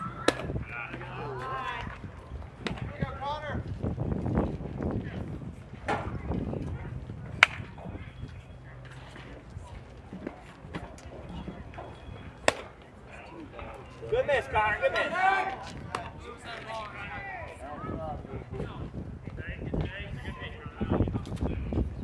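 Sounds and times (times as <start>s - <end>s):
voices calling out: 0.0s - 3.7s, 4.8s - 21.1s.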